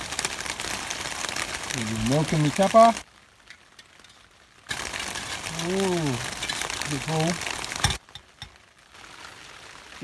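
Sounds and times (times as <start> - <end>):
rain hissing on a tarp: 0.0 - 10.0.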